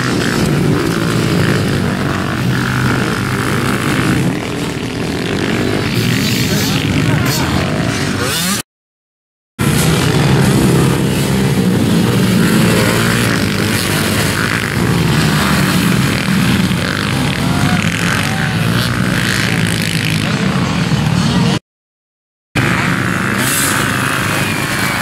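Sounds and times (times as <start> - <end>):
motocross bike engines: 0.0 - 8.6, 9.6 - 21.6, 22.6 - 25.0.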